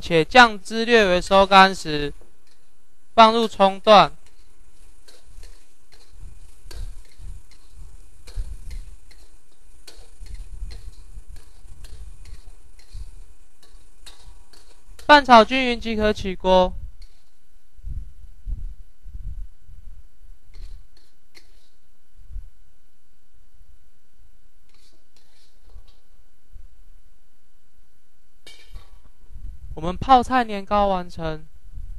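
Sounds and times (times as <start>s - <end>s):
low room hum: 0.0s - 31.9s
low steady rumble: 4.1s - 20.8s, 21.9s - 23.8s, 29.1s - 30.6s
metal spatula scraping wok: 4.2s - 15.5s, 20.5s - 21.8s, 24.7s - 25.8s.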